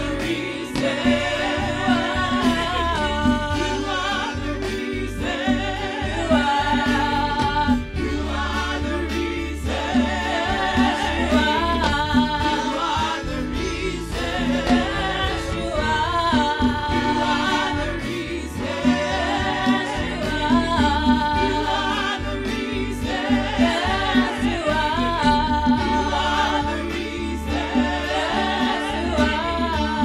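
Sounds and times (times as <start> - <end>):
choir singing gospel song: 0.0 - 30.0
instrumental backing with beat: 0.0 - 30.0.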